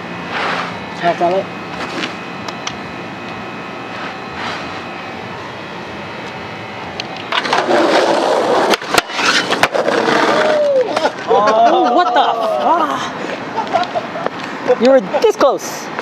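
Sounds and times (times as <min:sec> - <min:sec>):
mop scrubbing concrete: 0:00.3 - 0:00.7
skateboard clacks: 0:07.3 - 0:11.3
skateboard wheels rolling on asphalt: 0:07.3 - 0:11.4.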